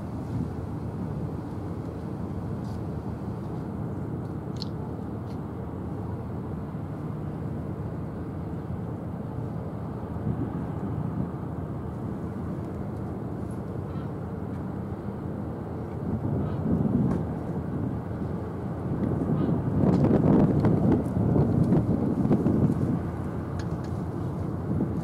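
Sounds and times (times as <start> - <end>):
low outdoor rumble: 0.0 - 25.0.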